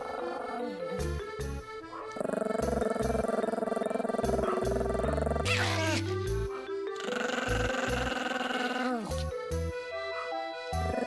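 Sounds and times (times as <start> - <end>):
dog growling: 2.0 - 9.2
dog whining: 2.0 - 9.2.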